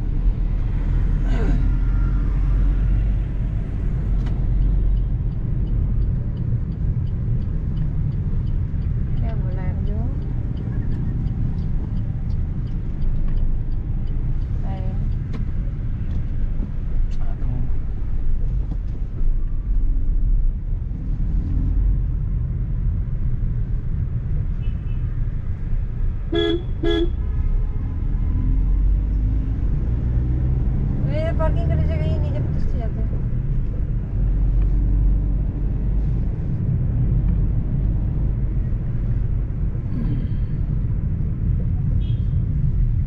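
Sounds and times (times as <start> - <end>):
car engine and road rumble: 0.0 - 43.0
car horn toots: 26.3 - 27.2.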